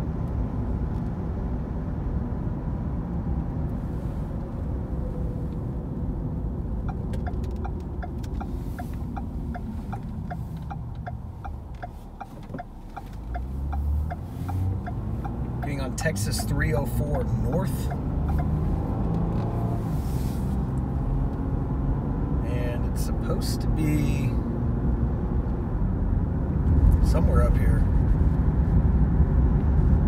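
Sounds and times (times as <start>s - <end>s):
car road noise rumble: 0.0s - 30.0s
turn signal ticking: 6.4s - 21.5s.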